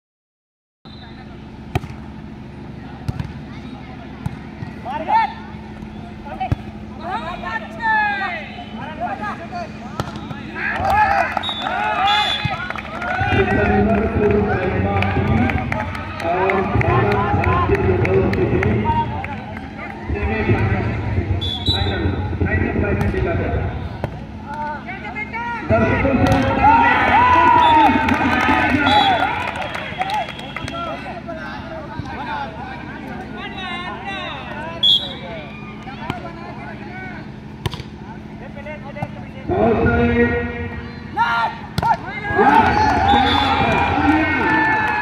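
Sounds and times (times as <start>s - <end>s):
steady low hum: 0.9s - 45.0s
players shouting: 3.5s - 45.0s
hands slapping volleyball: 37.6s - 38.0s.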